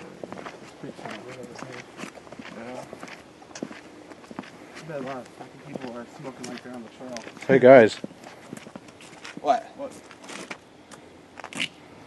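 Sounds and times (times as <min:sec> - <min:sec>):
footsteps on paved path: 0:00.0 - 0:11.8
sharp footsteps: 0:00.0 - 0:11.8.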